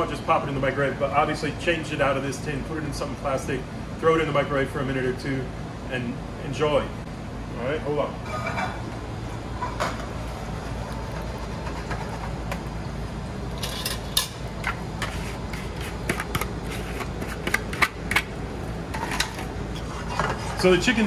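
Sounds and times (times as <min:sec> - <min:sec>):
ventilation hum: 0:00.0 - 0:21.0
utensil scraping metal: 0:13.6 - 0:18.0.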